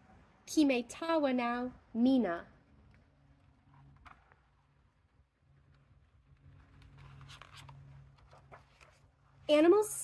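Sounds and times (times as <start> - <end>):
paper page turning: 5.7 - 9.2.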